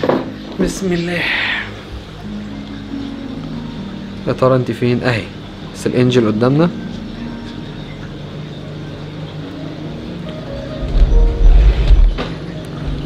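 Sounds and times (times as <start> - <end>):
background music with held notes: 0.0 - 13.0
loud low rumble: 10.7 - 12.3.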